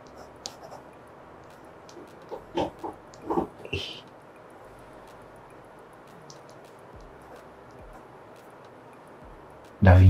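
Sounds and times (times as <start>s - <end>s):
pen scratching on paper: 0.1s - 0.8s
person chuckling: 2.3s - 4.0s.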